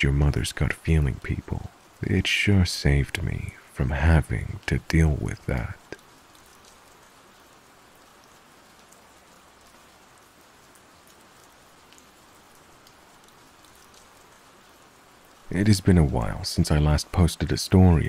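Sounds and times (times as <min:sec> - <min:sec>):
rain patter: 0:00.0 - 0:18.0.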